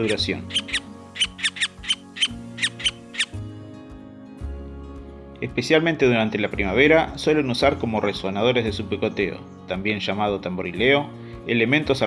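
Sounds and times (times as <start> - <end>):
woodpecker calling: 0.0 - 3.4
soft background music: 0.0 - 12.0.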